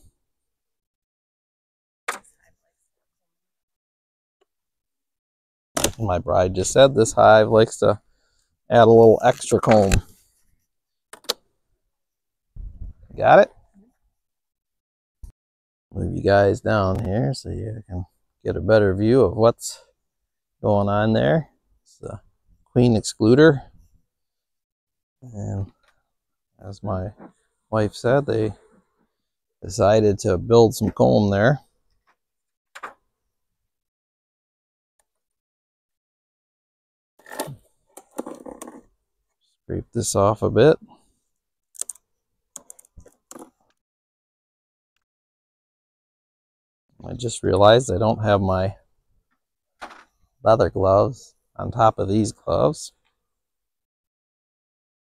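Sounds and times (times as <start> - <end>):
beehive equipment clicks: 41.8 - 42.0.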